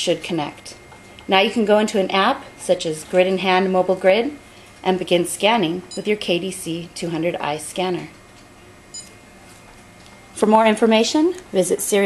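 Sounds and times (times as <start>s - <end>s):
barcode scanner beep: 5.9s - 6.2s, 8.9s - 9.2s.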